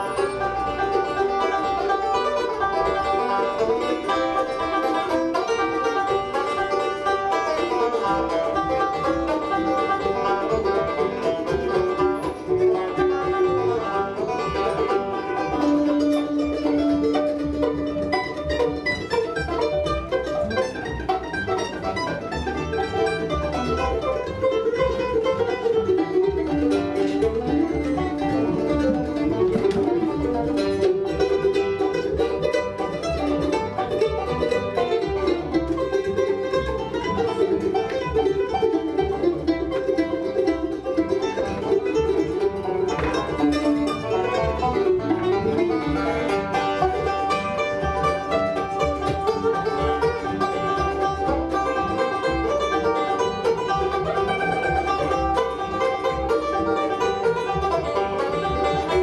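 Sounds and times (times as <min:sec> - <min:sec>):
banjo: 0:00.0 - 0:59.0
mandolin: 0:00.0 - 0:59.0
upright bass: 0:00.0 - 0:59.0.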